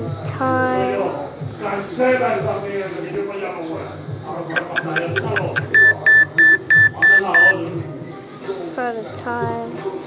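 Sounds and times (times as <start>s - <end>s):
quick ticks: 4.6s - 5.8s
smartwatch alarm beeps: 4.6s - 7.6s.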